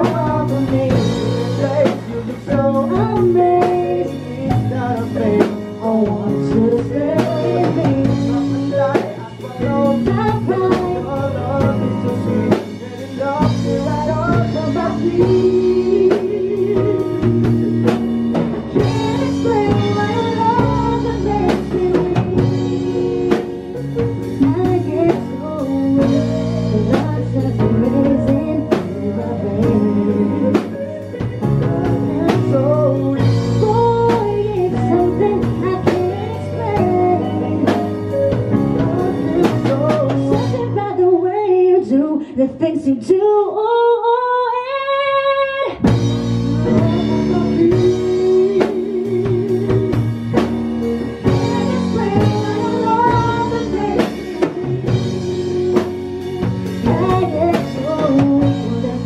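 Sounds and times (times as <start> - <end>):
man singing along: 0.0 - 17.3
live pop-rock band playing: 0.0 - 43.3, 43.9 - 59.0
woman singing into microphone: 0.0 - 59.0.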